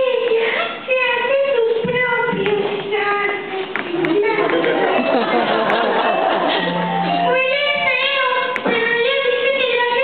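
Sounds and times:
woman singing in high voice: 0:00.0 - 0:04.4, 0:07.1 - 0:10.0.

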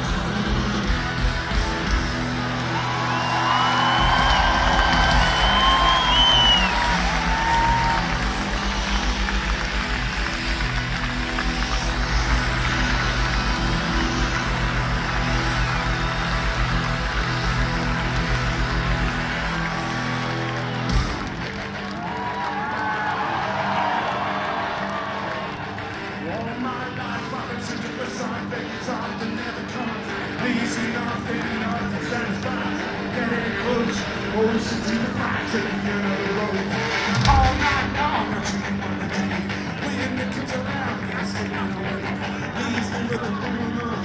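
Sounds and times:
crowd cheering and shouting: 0:00.0 - 0:44.0
rock band playing live: 0:00.0 - 0:44.0.

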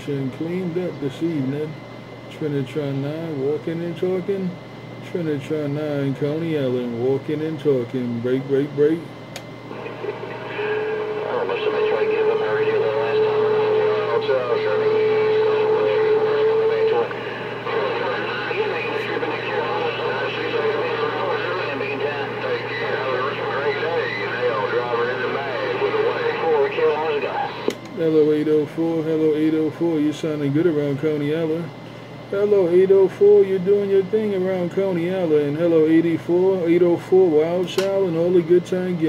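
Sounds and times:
garbled radio voice: 0:09.7 - 0:31.7.

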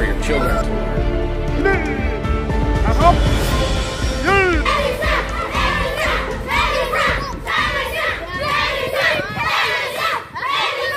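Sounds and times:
children shouting and cheering: 0:04.3 - 0:10.9.

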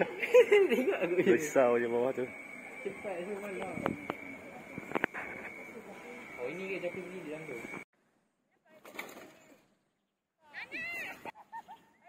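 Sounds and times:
high-pitched cry: 0:10.4 - 0:11.3.

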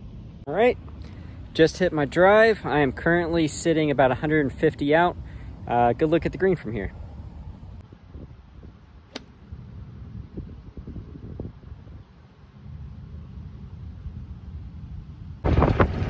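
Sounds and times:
wind rumble on microphone: 0:00.0 - 0:16.0
golf club striking ball: 0:09.1 - 0:09.4.

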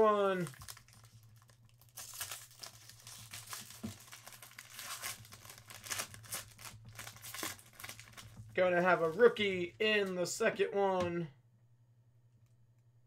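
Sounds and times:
foil wrapper tearing and crinkling: 0:00.3 - 0:09.1.

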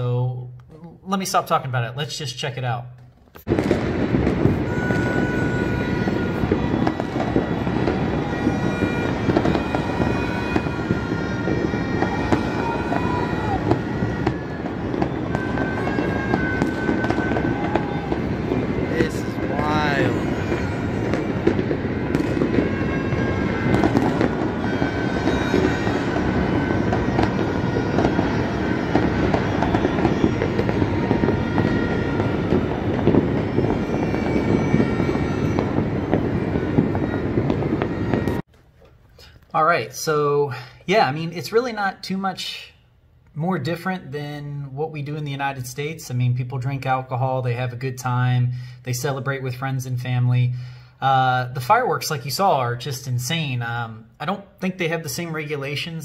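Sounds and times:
fireworks and firecrackers crackling: 0:03.4 - 0:38.5.

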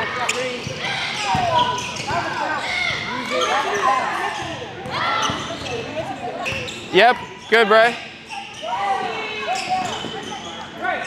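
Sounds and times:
shoes squeaking on hardwood floor: 0:00.2 - 0:10.8.

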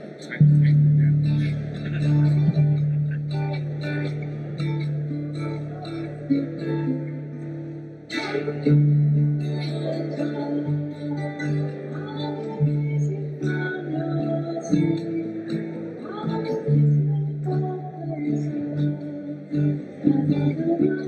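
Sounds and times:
electric guitar: 0:00.0 - 0:21.0
strummed acoustic guitar: 0:00.0 - 0:21.0.

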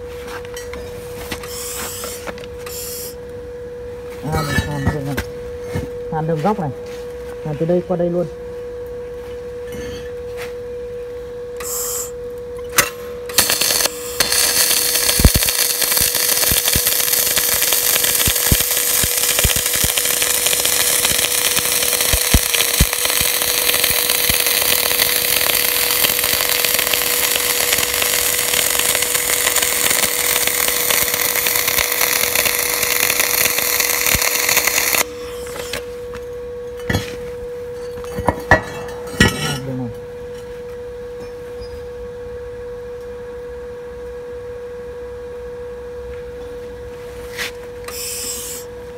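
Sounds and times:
steady hum: 0:00.0 - 0:48.9
welding arc crackling: 0:13.3 - 0:35.1.

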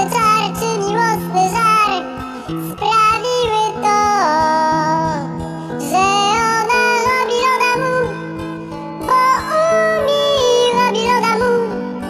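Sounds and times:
backing track music: 0:04.8 - 0:09.7.

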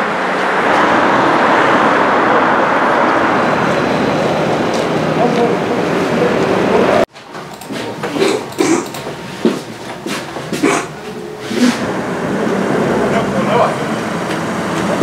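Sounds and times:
steady background noise: 0:00.0 - 0:15.0
indistinct voices: 0:00.4 - 0:15.0.

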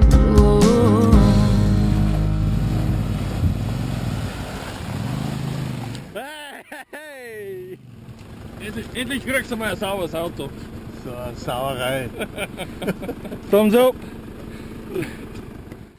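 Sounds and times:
background music: 0:00.0 - 0:03.6
truck engine running: 0:00.6 - 0:06.2, 0:07.8 - 0:15.9
person calling out: 0:06.2 - 0:07.8.

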